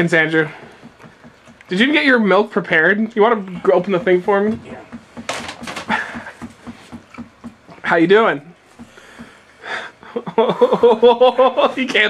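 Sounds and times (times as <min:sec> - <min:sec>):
man breathing hard: 0:08.8 - 0:10.2.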